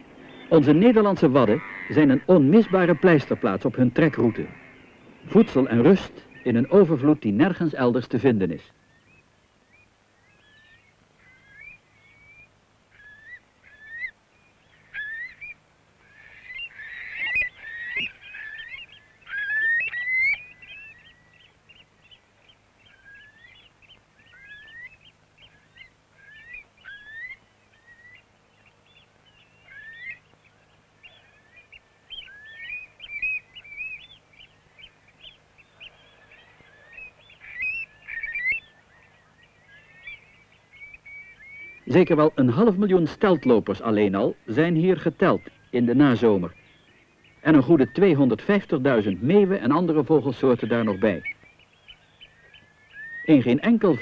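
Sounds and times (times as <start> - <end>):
wading birds whistling calls: 0.0 - 7.6, 8.7 - 54.0.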